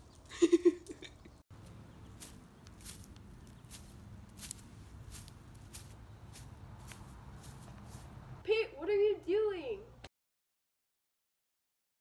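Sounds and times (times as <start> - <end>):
footsteps on grass: 1.5 - 8.4.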